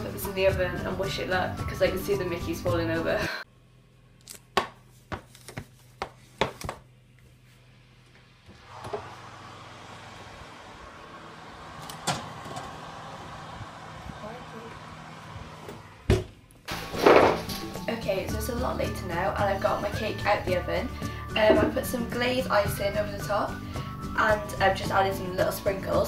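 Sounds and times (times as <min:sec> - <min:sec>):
oven humming: 0:07.5 - 0:24.0.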